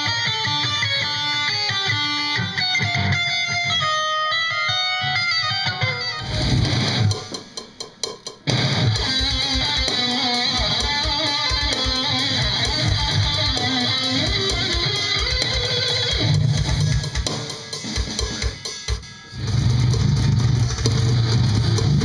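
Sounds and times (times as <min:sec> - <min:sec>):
distorted electric guitar riff: 0:00.0 - 0:22.0
rapid kick drum beats: 0:06.3 - 0:22.0.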